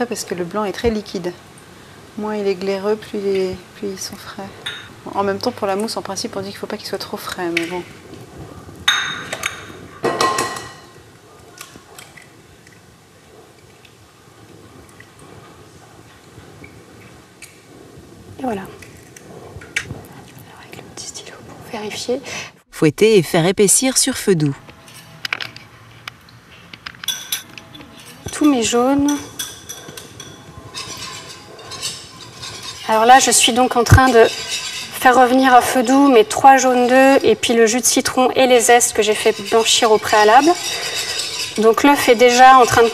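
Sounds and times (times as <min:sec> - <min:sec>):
glass bowls clinking: 0:04.6 - 0:05.0, 0:08.8 - 0:11.0, 0:27.1 - 0:42.9
wire whisk scraping a saucepan: 0:27.9 - 0:42.9.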